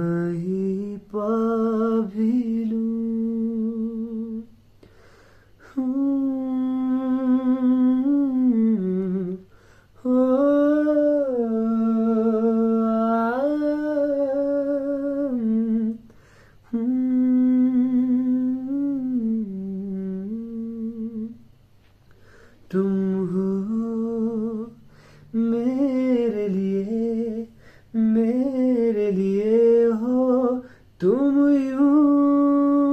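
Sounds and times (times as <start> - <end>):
man humming: 5.6 - 21.4.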